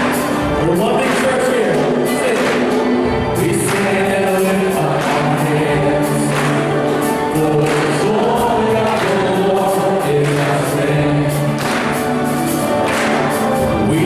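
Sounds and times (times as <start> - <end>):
lead singers and choir singing: 0.0 - 14.0
live worship band playing: 0.0 - 14.0.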